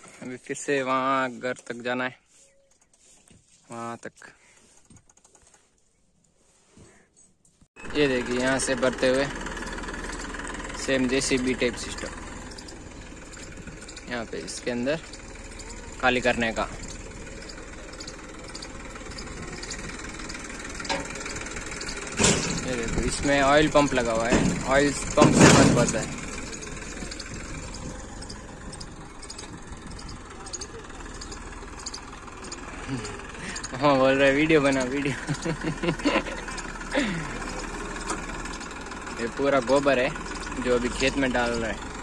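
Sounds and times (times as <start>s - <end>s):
tractor diesel engine running: 0.0s - 2.1s, 7.8s - 42.0s.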